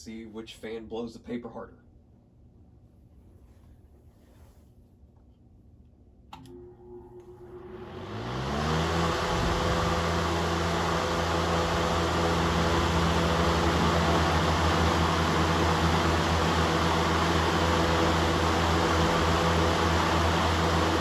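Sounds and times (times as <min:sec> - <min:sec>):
fan air rush with motor hum: 0:00.0 - 0:21.0
floor fans spinning up: 0:03.1 - 0:21.0.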